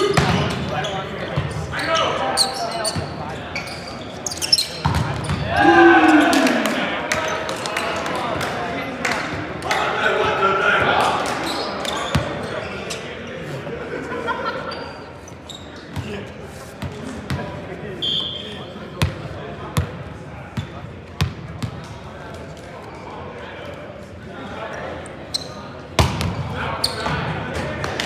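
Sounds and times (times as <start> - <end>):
voices echoing in gym: 0.0 - 28.0.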